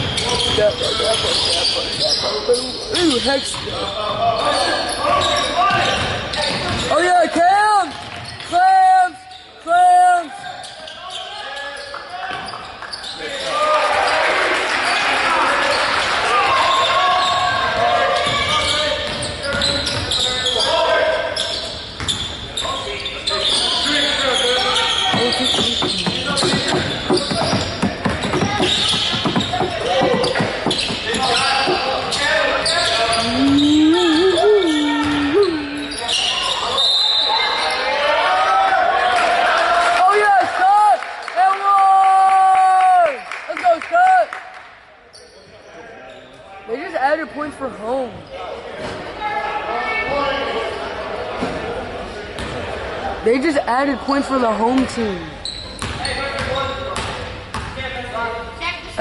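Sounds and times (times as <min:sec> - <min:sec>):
echoing voices: 0:23.1 - 0:36.6
basketball bouncing on wooden floor: 0:25.1 - 0:31.8.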